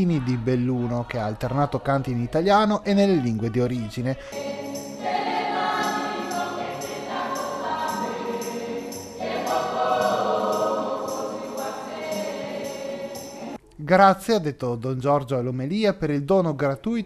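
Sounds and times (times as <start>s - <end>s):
choir singing lively song: 0.0s - 13.6s
steady percussion beat: 4.4s - 13.6s.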